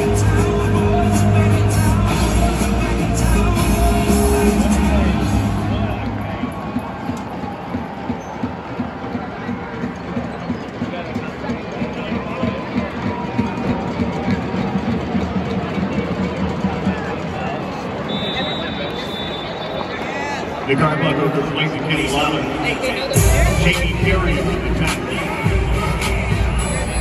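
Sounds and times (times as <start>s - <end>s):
crowd chatter: 0.0s - 27.0s.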